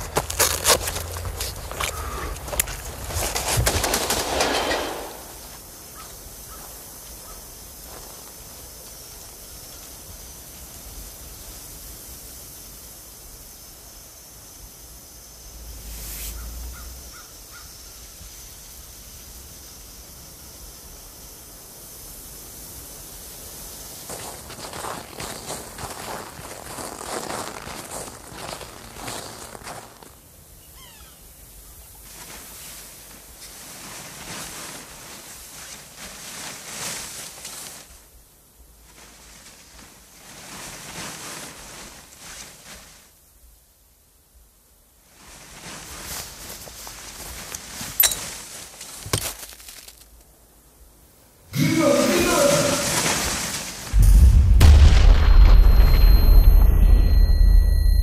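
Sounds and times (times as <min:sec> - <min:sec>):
rustling and scuffing in snow: 0:00.0 - 0:10.7, 0:22.8 - 0:43.8, 0:44.8 - 0:50.3, 0:52.0 - 0:54.0
muffled blast with low rumble: 0:53.9 - 0:58.0.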